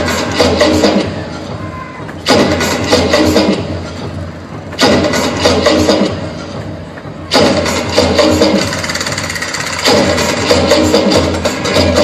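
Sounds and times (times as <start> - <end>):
dance music with steady bass: 0.0 - 12.0.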